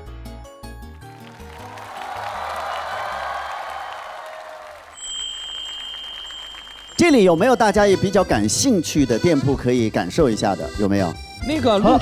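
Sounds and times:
studio audience applauding: 0.9s - 8.2s
upbeat background music: 7.1s - 12.0s.

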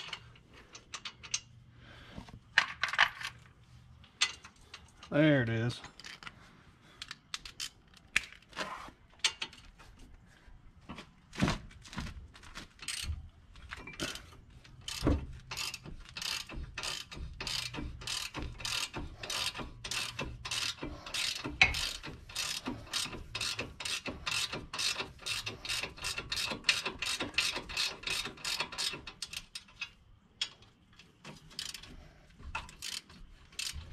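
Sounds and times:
ratchet wrench clicking: 14.8s - 30.6s, 31.5s - 31.9s, 32.6s - 33.9s.

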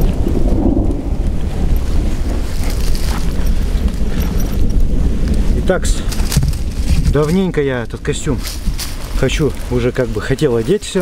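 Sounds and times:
rain falling: 0.0s - 11.0s
thunder rumbling: 0.0s - 11.0s.

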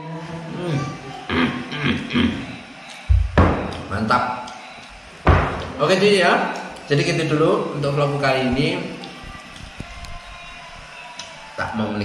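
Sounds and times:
man murmuring while eating: 0.5s - 2.6s
heavy thumps against table: 3.1s - 3.7s, 5.3s - 5.7s.

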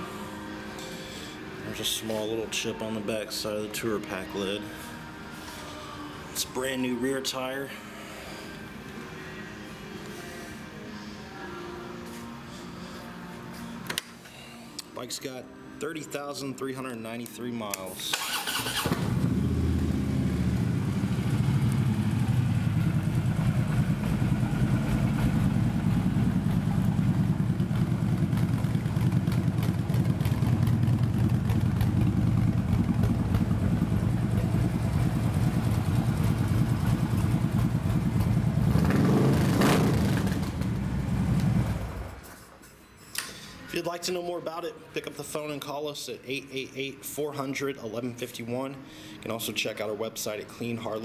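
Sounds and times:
motorcycle engine idling: 18.9s - 42.1s.

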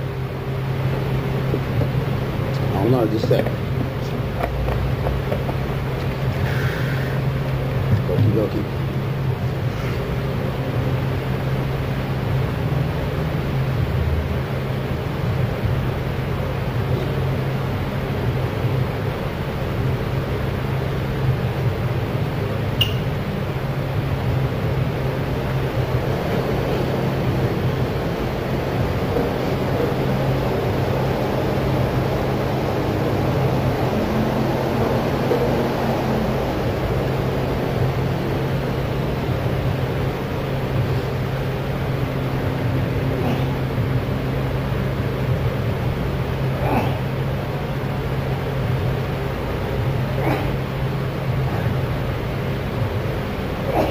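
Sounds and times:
ventilation hum and hiss: 0.0s - 53.9s
sharp click: 22.8s - 23.1s.

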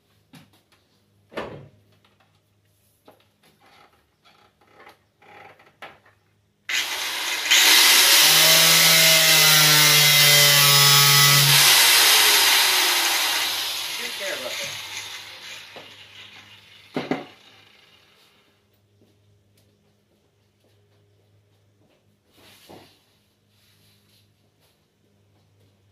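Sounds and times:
angle grinder cutting sheet metal: 6.7s - 18.3s.

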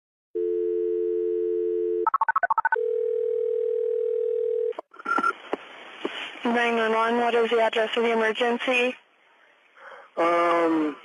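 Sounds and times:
telephone ringback tone: 0.4s - 4.7s
telephone dial tone: 0.4s - 4.8s.

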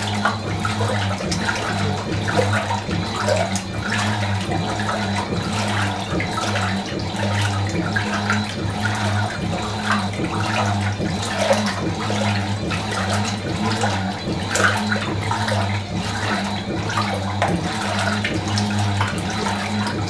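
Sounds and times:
washing machine motor hum: 0.0s - 20.0s
water sloshing and churning: 0.0s - 20.0s.

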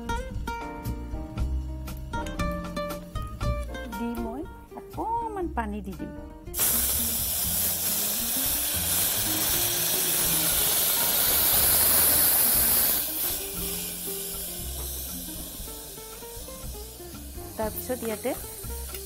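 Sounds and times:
water hissing into steam: 6.6s - 19.0s.

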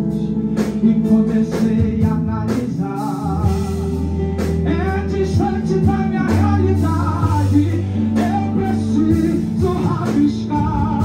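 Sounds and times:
band with electric guitars: 0.0s - 11.0s
man singing: 0.0s - 11.0s.

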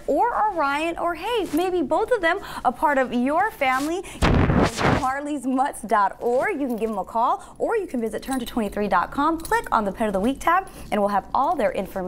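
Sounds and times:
person speaking: 0.0s - 5.3s
noise rush on microphone: 3.6s - 5.2s.

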